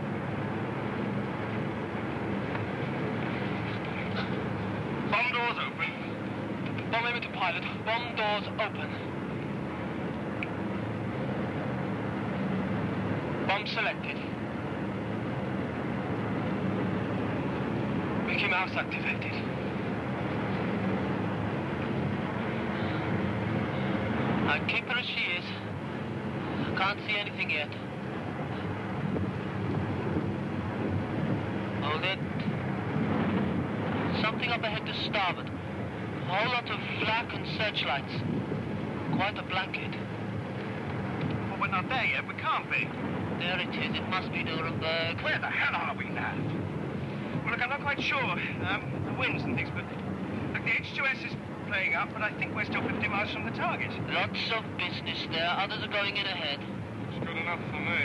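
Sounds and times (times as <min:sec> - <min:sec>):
bomber piston engines droning: 0:00.0 - 0:58.0.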